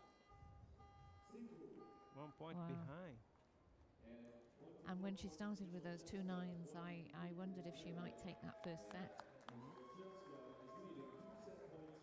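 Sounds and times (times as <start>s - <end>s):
faint electronic beep tone: 0.0s - 3.1s
murmur of voices: 4.3s - 12.0s.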